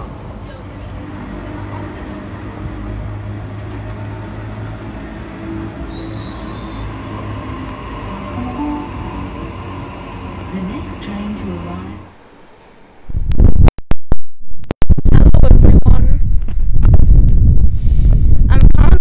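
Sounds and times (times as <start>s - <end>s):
electric train motors humming: 0.0s - 13.0s.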